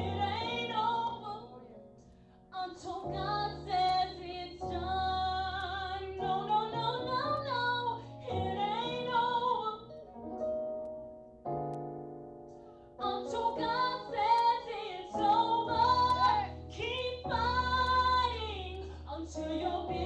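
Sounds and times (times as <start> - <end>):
woman singing worship song: 0.0 - 1.6, 2.5 - 9.9, 13.0 - 20.0.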